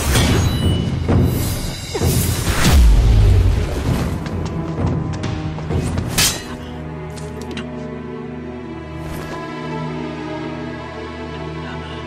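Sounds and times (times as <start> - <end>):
dramatic music with heavy drums: 0.0 - 10.4.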